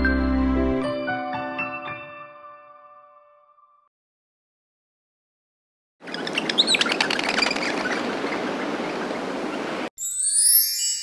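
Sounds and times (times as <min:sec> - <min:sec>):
birds chirping: 0:06.0 - 0:09.9.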